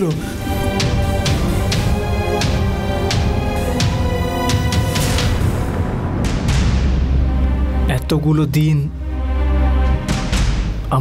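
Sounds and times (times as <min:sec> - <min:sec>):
low music drone: 0:00.0 - 0:11.0
soft musical hits: 0:00.0 - 0:11.0.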